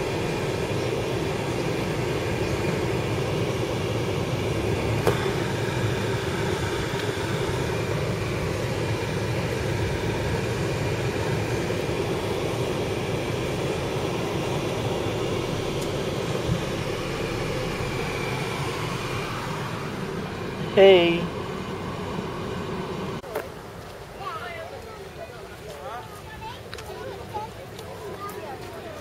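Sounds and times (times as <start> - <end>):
car engine and tyre noise: 0.0 - 24.2.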